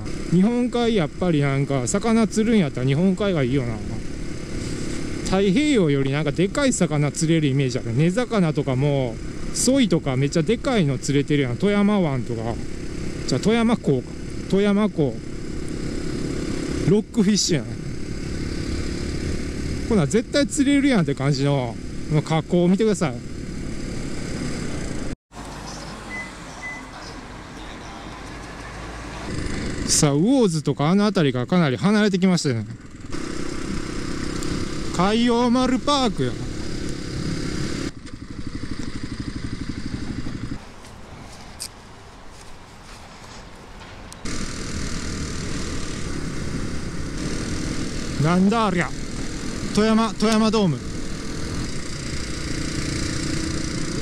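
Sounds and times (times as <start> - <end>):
motorcycle engine running steadily: 0.0 - 25.1, 32.6 - 40.6, 44.2 - 54.0
wind and road noise: 0.0 - 54.0.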